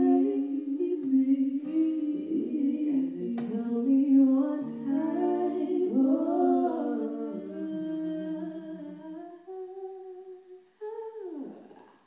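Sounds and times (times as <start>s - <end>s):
women singing in harmony: 0.0s - 10.2s
acoustic guitar: 2.4s - 9.9s.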